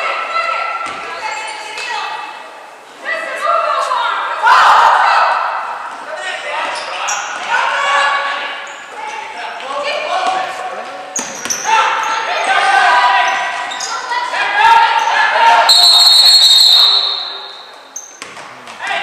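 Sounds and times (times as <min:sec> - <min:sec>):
people calling out: 0:14.7 - 0:17.8
referee's whistle blast: 0:15.7 - 0:17.8.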